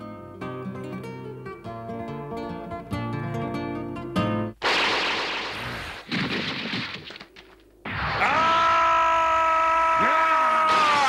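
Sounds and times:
man yelling: 8.2 - 11.0.

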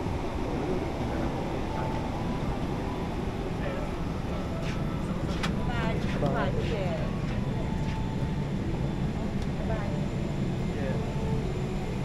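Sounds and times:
aircraft cabin low rumble: 0.0 - 12.0
passengers chattering: 0.0 - 12.0.

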